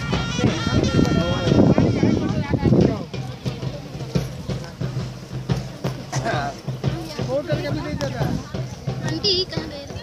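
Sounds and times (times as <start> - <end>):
crowd voices: 0.0 - 10.0
steady drumbeat: 0.0 - 10.0.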